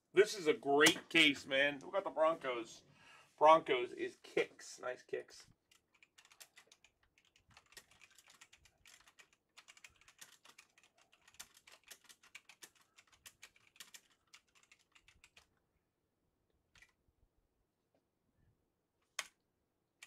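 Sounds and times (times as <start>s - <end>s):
typing on computer keyboard: 5.7s - 15.5s.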